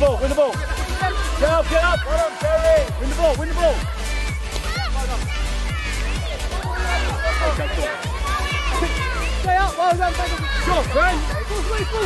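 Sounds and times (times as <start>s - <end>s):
electronic background music: 0.0s - 12.0s
children and adults shouting: 0.4s - 12.0s.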